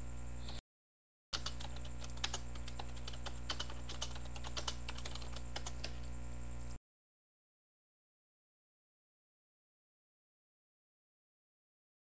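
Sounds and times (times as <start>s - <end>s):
steady electrical hum: 0.0s - 0.6s, 1.4s - 6.8s.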